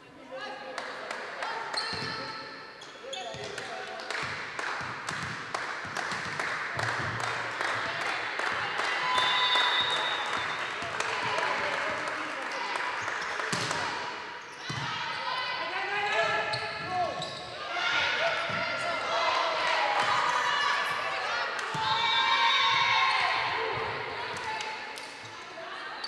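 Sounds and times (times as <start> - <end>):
players' voices and calls: 0.0 - 26.0.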